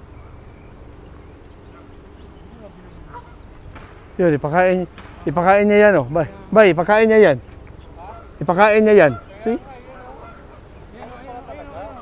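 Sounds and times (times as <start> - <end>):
geese honking: 0.0 - 12.0.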